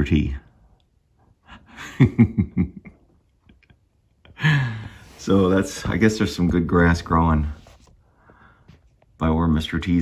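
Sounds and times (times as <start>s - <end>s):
man chuckling: 1.4s - 4.9s.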